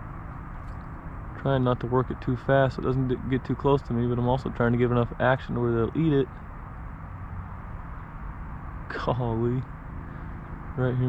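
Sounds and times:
low hum and hiss: 0:00.0 - 0:11.0
man's voice: 0:01.4 - 0:06.3, 0:08.9 - 0:09.6, 0:10.8 - 0:11.0.

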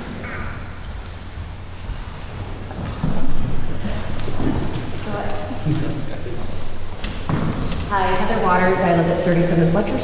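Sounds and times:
low hum and rumble: 0:00.0 - 0:10.0.

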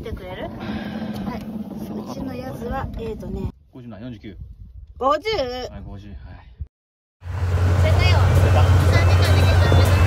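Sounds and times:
engine humming: 0:07.2 - 0:10.0.

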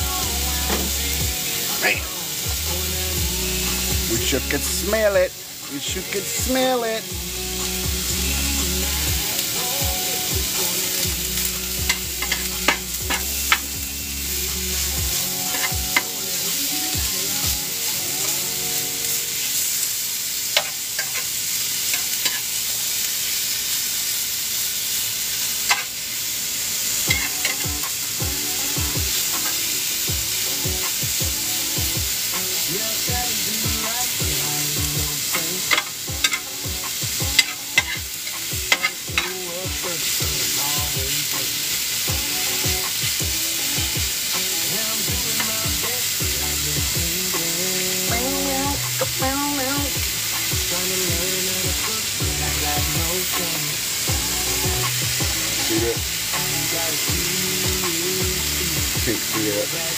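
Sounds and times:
meat and vegetables sizzling in pan: 0:00.0 - 0:59.9.

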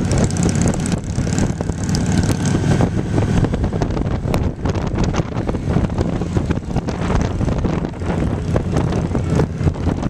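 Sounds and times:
pickup truck engines passing: 0:00.0 - 0:10.0
wind buffeting microphone: 0:00.0 - 0:10.0.

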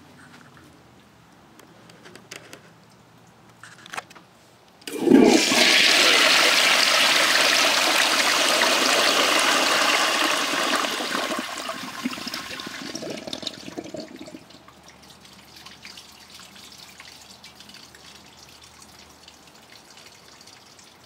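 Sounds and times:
toilet flushing: 0:04.9 - 0:14.6
water gurgling and trickling: 0:04.9 - 0:21.0.

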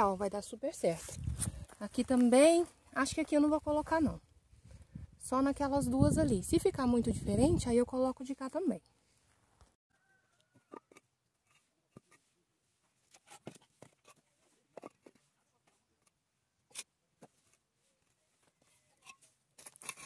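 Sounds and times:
bricks knocking and scraping on soil: 0:10.4 - 0:20.0.

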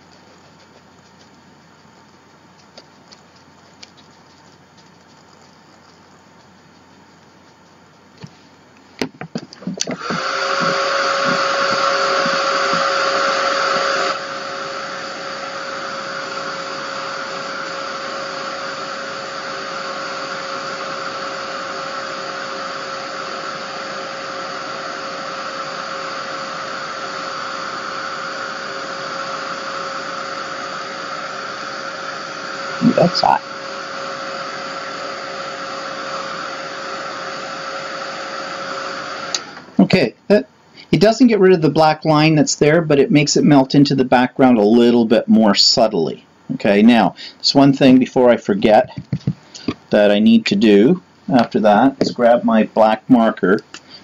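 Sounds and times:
heat tool blowing and whining: 0:00.0 - 0:54.0.

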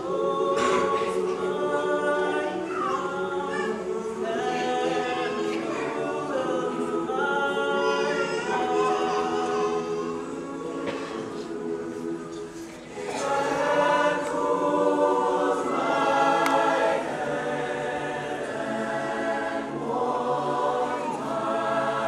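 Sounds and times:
choir singing a cappella: 0:00.0 - 0:22.0.

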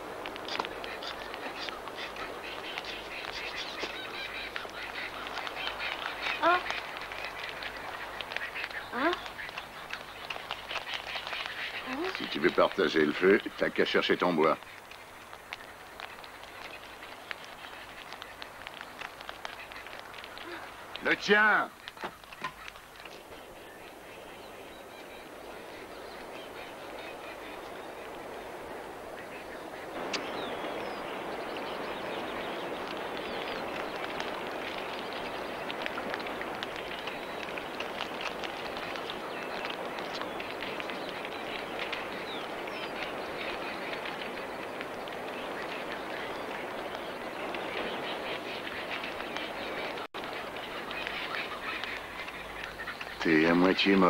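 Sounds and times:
flock of birds calling: 0:00.0 - 0:54.0.

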